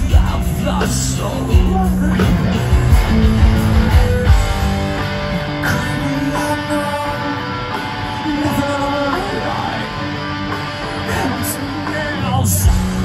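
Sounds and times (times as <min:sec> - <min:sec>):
heavy rock band playing live: 0:00.0 - 0:13.0.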